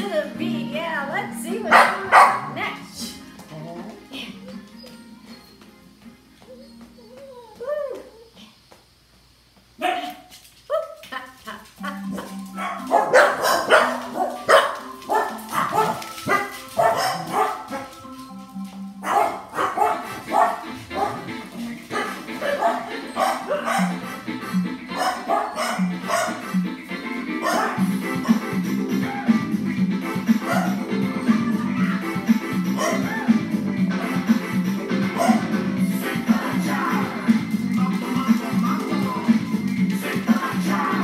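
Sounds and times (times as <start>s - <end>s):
dog barking: 1.7s - 2.6s, 9.8s - 11.0s, 11.8s - 18.0s, 19.0s - 24.2s, 24.9s - 26.5s, 27.4s - 28.5s, 30.4s - 30.8s, 32.8s - 33.4s, 35.2s - 35.6s
music with steady beat: 11.8s - 41.0s.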